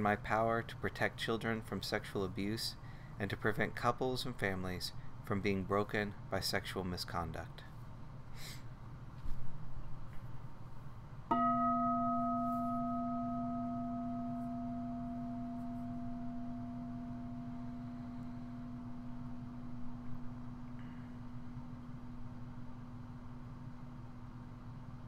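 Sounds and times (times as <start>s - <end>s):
metal singing bowl ringing: 11.3s - 21.4s.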